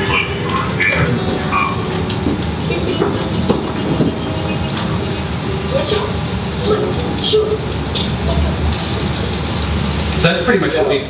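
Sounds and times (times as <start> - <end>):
rumbling soundtrack noise: 0.0 - 11.0.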